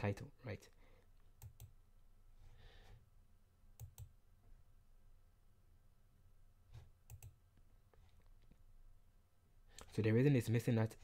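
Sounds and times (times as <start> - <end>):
computer mouse clicks: 1.4 - 1.8, 3.8 - 4.2, 6.7 - 7.4.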